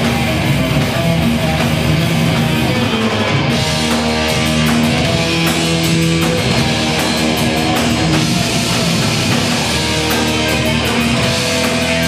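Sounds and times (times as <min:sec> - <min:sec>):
heavy metal band playing live: 0:00.0 - 0:12.0.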